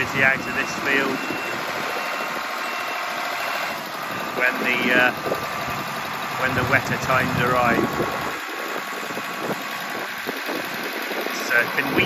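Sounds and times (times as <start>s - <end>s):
tractor engine running: 0.0s - 12.0s.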